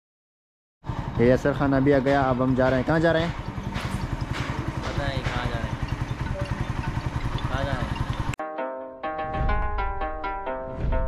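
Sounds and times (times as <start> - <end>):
motorcycle engine idling: 0.8 - 8.4
voices: 1.2 - 8.4
plucked-string music: 3.4 - 11.0.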